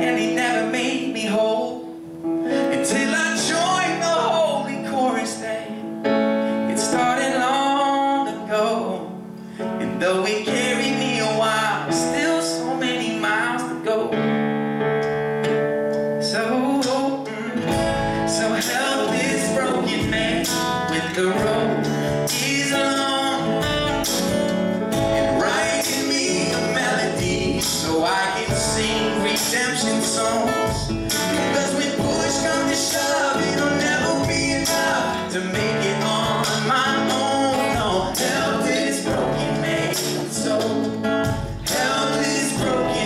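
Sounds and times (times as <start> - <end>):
man singing into microphone: 0.0 - 5.9, 6.7 - 14.3, 16.2 - 24.3, 25.0 - 43.0
acoustic guitar: 0.0 - 43.0
keyboard: 0.0 - 43.0
low drum thumps: 17.7 - 18.8, 20.0 - 20.8, 23.6 - 26.0, 27.1 - 29.7, 30.7 - 31.4, 32.0 - 34.9, 41.2 - 42.0, 42.6 - 43.0.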